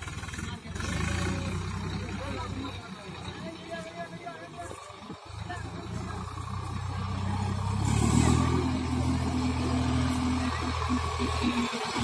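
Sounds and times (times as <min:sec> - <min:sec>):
tractor diesel engine: 0:00.0 - 0:12.0.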